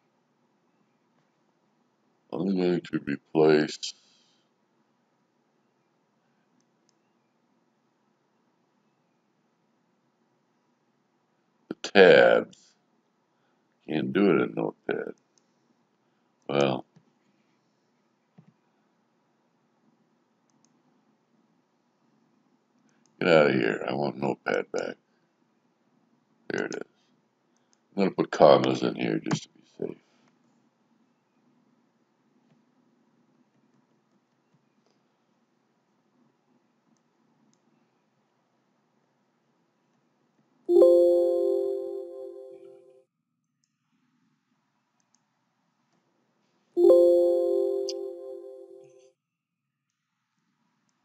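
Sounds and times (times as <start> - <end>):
faint mouse clicks: 6.4 - 7.2, 20.4 - 20.9, 22.7 - 23.2, 36.9 - 37.8, 45.0 - 46.1
computer mouse clicks: 20.4 - 20.8, 45.0 - 45.3
system alert chime: 40.7 - 42.8, 46.8 - 48.8.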